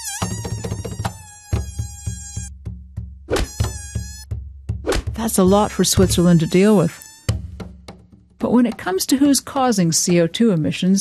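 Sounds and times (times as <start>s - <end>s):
cartoon mosquito whine: 0.0s - 2.5s, 3.3s - 4.2s, 6.0s - 7.4s
background music with steady beat: 0.3s - 6.3s, 7.3s - 9.6s.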